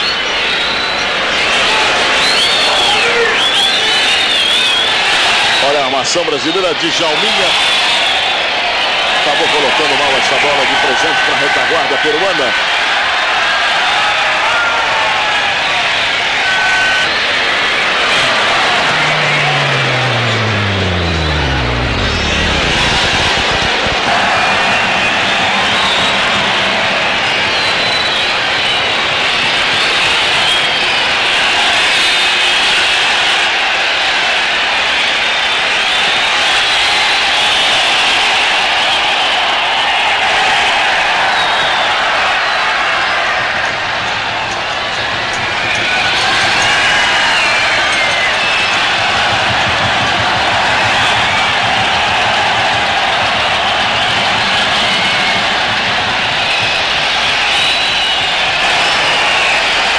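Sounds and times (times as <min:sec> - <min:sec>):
stadium crowd noise: 0:00.0 - 0:59.9
high wavering whistles: 0:17.0 - 0:29.8, 0:44.0 - 0:59.8
low falling tone: 0:17.4 - 0:29.3, 0:48.1 - 0:59.5.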